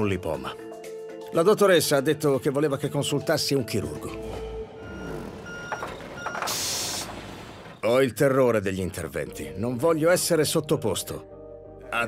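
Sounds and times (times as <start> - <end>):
reversing alarm beeps: 4.4 - 7.1
hiss of air: 6.5 - 7.1.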